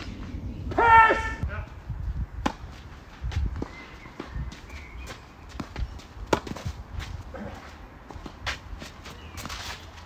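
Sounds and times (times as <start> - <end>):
tennis ball struck by racket: 2.4 - 2.7, 5.6 - 6.8
ball bouncing on clay court: 2.4 - 6.8.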